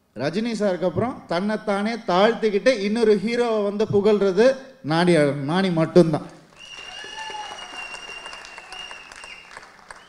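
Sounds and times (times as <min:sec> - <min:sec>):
audience applauding: 0:06.5 - 0:10.0.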